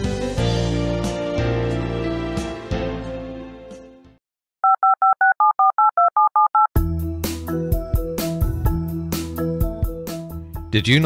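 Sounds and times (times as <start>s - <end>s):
telephone keypad tones: 4.6s - 6.7s.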